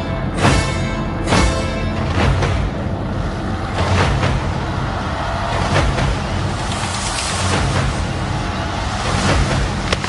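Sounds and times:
loud low rumble: 2.0s - 10.0s
hiss of noise: 6.4s - 10.0s.

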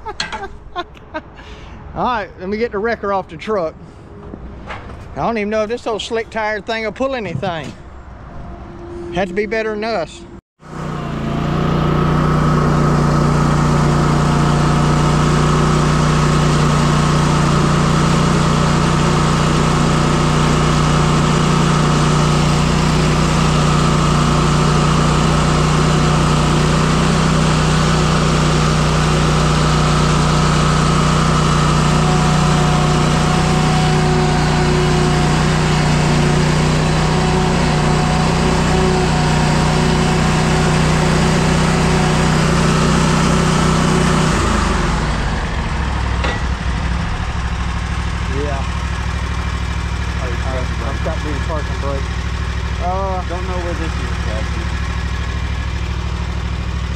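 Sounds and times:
mower engine running: 10.6s - 56.9s.

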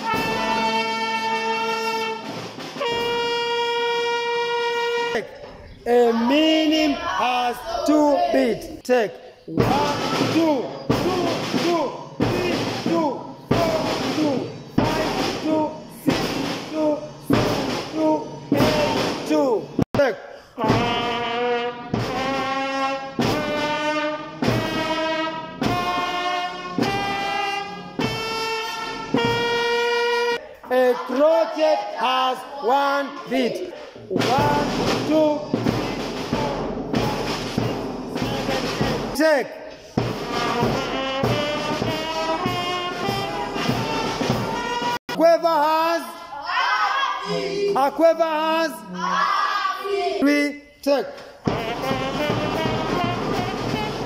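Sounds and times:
bass and snare drums: 0.0s - 5.2s, 9.5s - 30.4s, 34.1s - 45.0s, 51.4s - 54.0s
brass band holding long notes: 0.0s - 5.4s, 9.6s - 19.1s, 20.6s - 30.5s, 34.2s - 39.1s, 40.0s - 45.0s, 51.5s - 54.0s.

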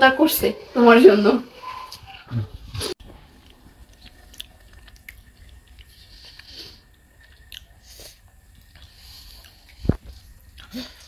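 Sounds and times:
chewing with small crunches: 2.8s - 11.0s.

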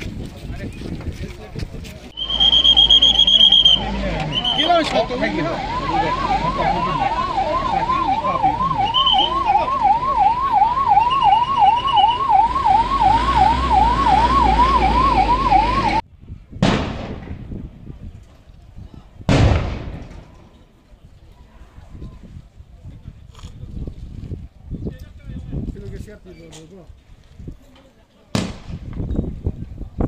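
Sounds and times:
ambulance siren warbling: 2.2s - 16.0s.

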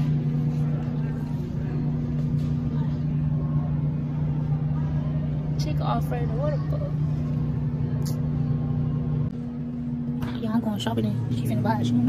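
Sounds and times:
store background hum: 0.0s - 12.0s.

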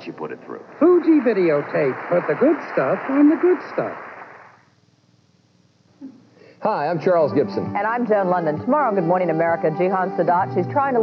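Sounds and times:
tape hiss: 0.0s - 11.0s.

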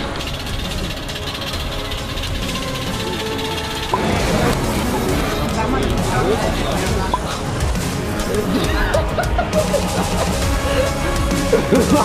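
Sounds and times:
background music with held notes: 0.0s - 12.0s
continuous noise: 0.0s - 12.0s.

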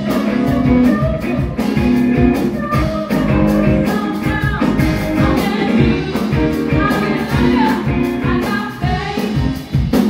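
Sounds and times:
drum kit beat: 0.0s - 10.0s
live band playing: 0.0s - 10.0s.

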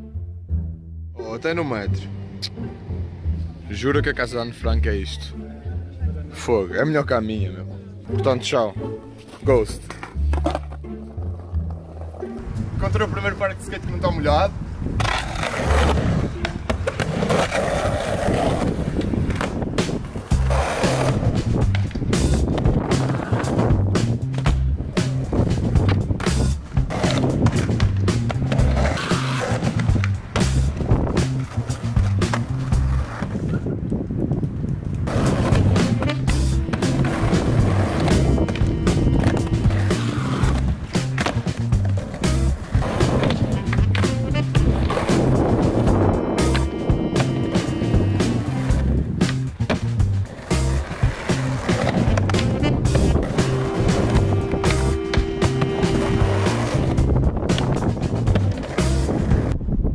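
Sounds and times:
skateboard wheels rolling: 9.1s - 59.6s
skateboard clacks: 15.0s - 33.9s, 34.5s - 59.5s
music with steady beat: 19.8s - 33.0s, 35.3s - 59.1s.

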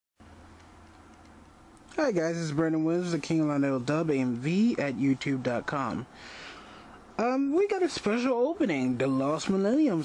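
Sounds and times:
faint steady hiss: 0.2s - 10.0s
low hum: 0.2s - 10.0s.

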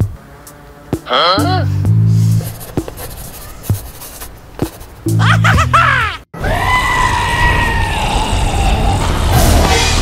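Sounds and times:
background music with low beat: 0.0s - 5.9s
high-pitched human scream: 5.8s - 9.0s.

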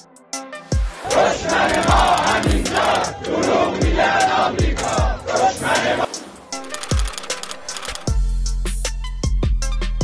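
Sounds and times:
crowd chanting: 1.0s - 6.2s.

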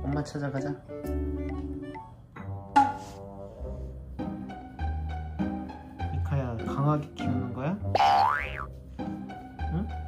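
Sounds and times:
playful music with bass line: 0.0s - 10.0s.

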